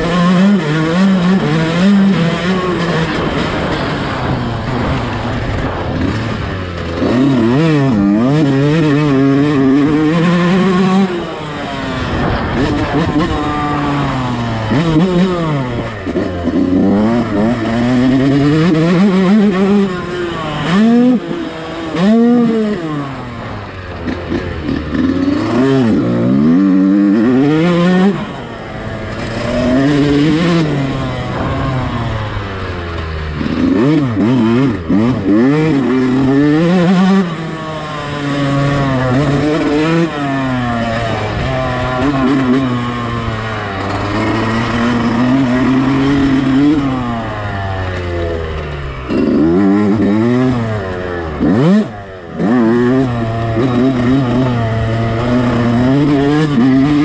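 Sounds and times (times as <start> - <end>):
motocross bike engine revving: 0.0 - 57.0.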